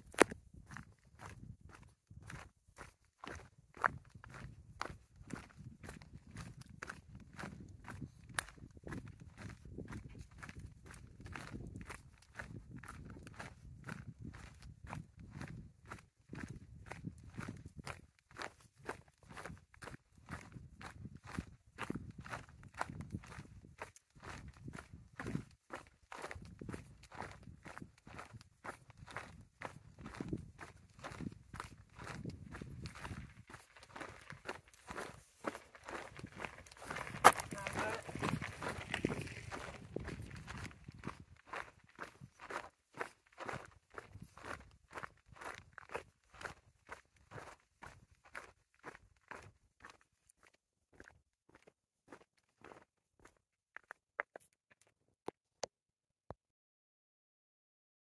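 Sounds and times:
footsteps on gritty concrete: 0:00.0 - 0:01.5, 0:28.7 - 0:44.6, 0:52.1 - 0:54.9.

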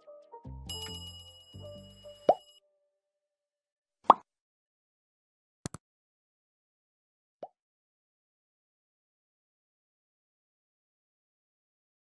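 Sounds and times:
bell-like chime: 0:00.0 - 0:02.6
low-note jingle: 0:00.0 - 0:02.6.

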